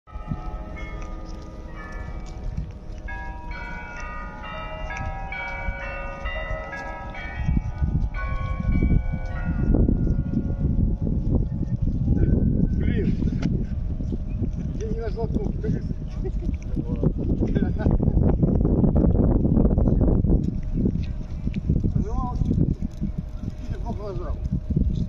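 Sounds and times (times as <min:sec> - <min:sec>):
bells ringing a tune: 0:00.1 - 0:11.2
low rumbling noise: 0:00.1 - 0:25.0.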